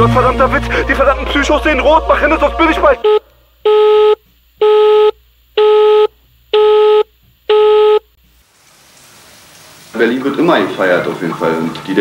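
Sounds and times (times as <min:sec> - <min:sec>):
telephone busy tone beeps: 0:03.0 - 0:08.1.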